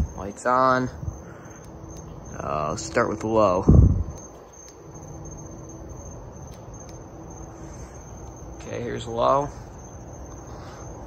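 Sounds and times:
ceiling fans running: 0.0 - 11.0
high insect trill: 0.0 - 11.0.

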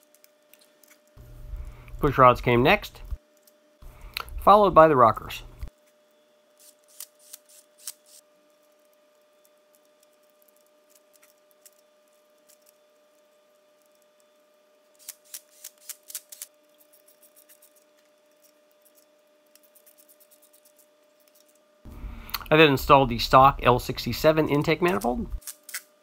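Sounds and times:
faint steady hum: 0.0 - 15.8, 16.5 - 26.0.

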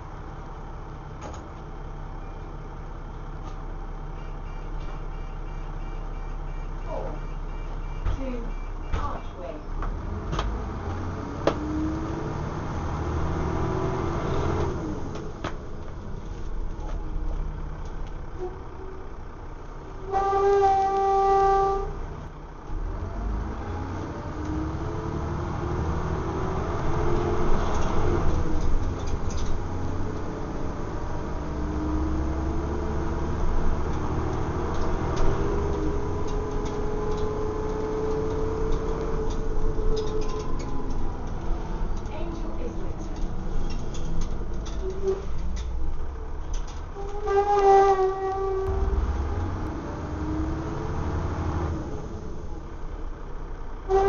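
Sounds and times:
bus diesel engine rumble: 0.0 - 54.0
vehicle horn: 4.1 - 8.7, 20.0 - 22.0, 47.0 - 49.0.

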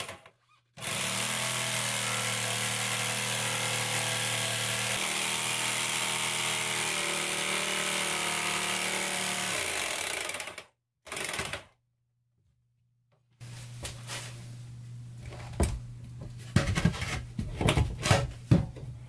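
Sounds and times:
jigsaw cutting: 0.0 - 11.8
saw motor winding down: 0.8 - 10.5.

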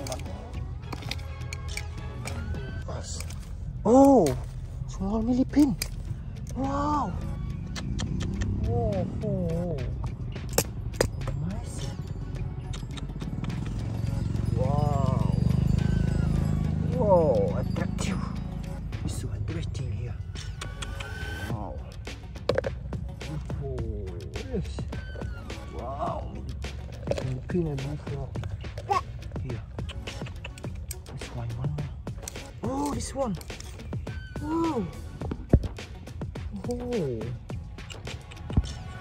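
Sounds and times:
handling noise clicks: 0.0 - 2.6, 5.4 - 6.6, 10.0 - 11.4, 12.6 - 13.9, 29.7 - 31.1, 32.1 - 34.1, 37.5 - 38.9.

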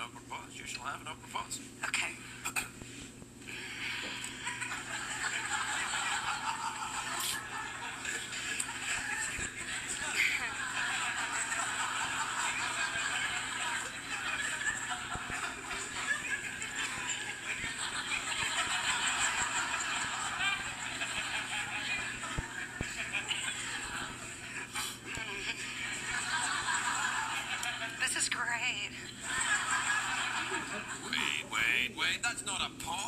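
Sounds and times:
studio audience laughing and cheering: 3.5 - 31.5.

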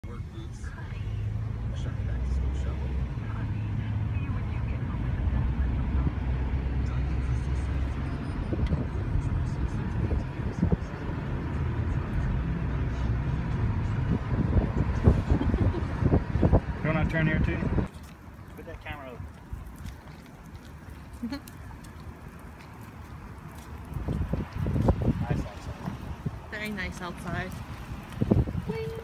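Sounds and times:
car cabin road rumble: 0.0 - 29.0.

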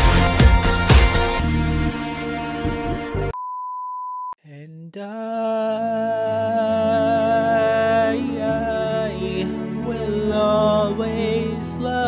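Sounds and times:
pop instrumental music: 0.0 - 3.4, 5.5 - 12.0
steady test-tone beep: 3.3 - 4.4.

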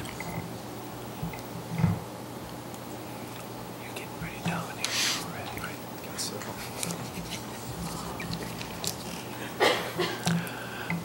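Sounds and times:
low electrical hum: 0.0 - 11.0
person whispering: 3.8 - 6.8.

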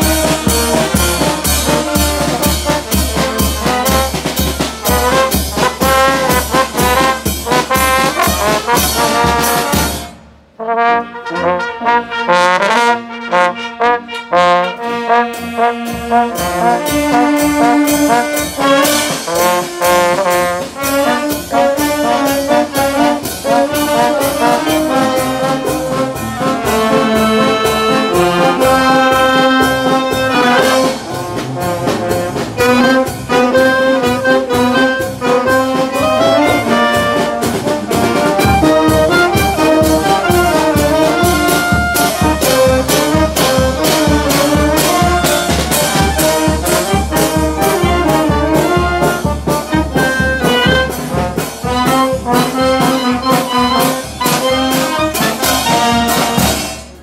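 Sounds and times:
wind band playing: 0.0 - 57.0.

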